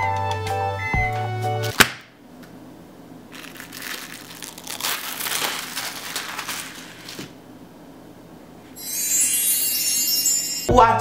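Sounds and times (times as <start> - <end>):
plastic film peeling and crinkling: 3.3 - 7.4.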